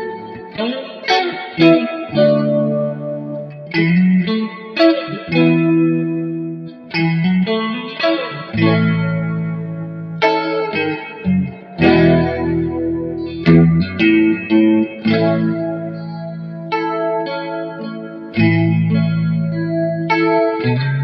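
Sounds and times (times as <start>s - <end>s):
electric guitar played slowly: 0.0s - 21.0s.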